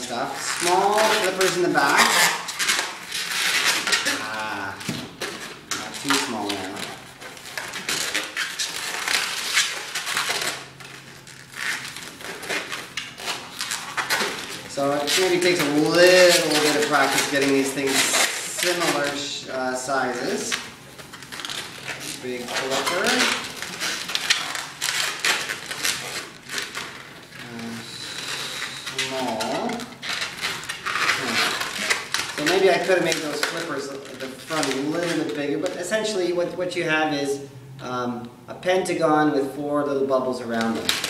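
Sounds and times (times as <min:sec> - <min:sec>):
rubber balloon squeaking: 0:00.0 - 0:36.2.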